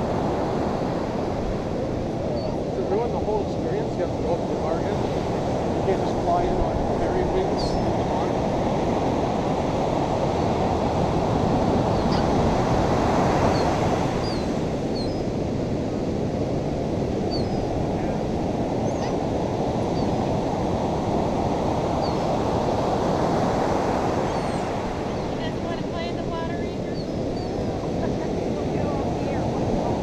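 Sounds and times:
ocean surf washing onto beach: 0:00.0 - 0:30.0.

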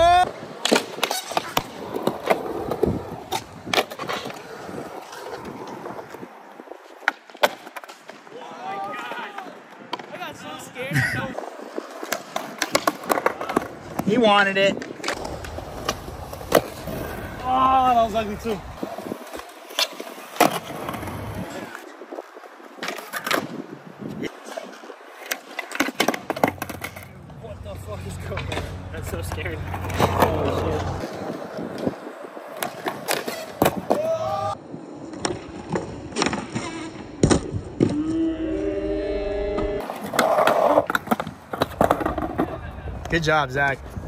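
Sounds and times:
skateboard clacks: 0:00.0 - 0:06.2, 0:11.6 - 0:17.7, 0:39.8 - 0:43.9
skateboard wheels rolling on concrete: 0:00.0 - 0:44.0.

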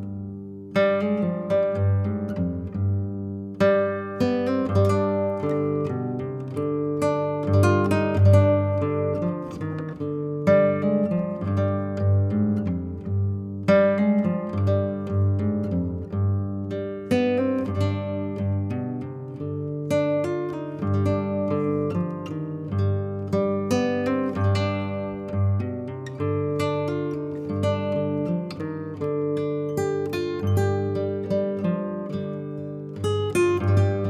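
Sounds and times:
acoustic guitar music: 0:00.0 - 0:34.0.

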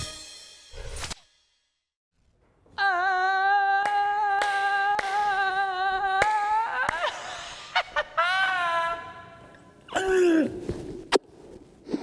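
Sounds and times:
person singing a long note: 0:02.8 - 0:07.0
sharp hand claps: 0:03.8 - 0:05.4.

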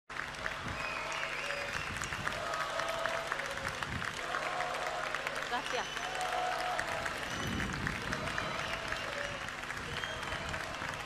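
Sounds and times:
audience clapping: 0:00.1 - 0:11.0
faint voices: 0:00.4 - 0:11.0.

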